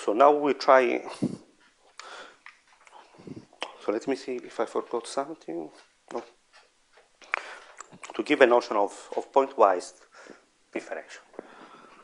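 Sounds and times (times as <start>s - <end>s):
faint breath-like hiss: 1.0s - 4.0s, 10.0s - 10.6s, 11.2s - 12.0s.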